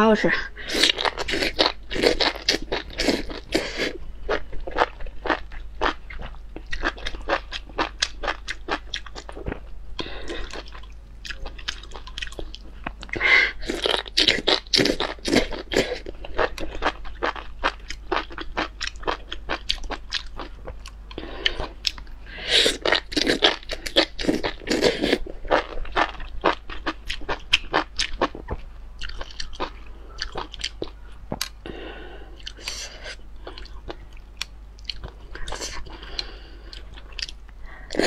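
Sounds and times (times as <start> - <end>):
person chewing mushrooms: 0.6 - 38.0.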